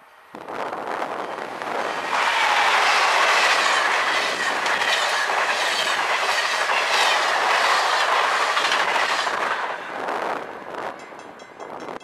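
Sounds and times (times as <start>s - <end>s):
train wheels rushing on rails: 0.0s - 12.0s
wheels clacking over rail joints: 1.3s - 10.0s.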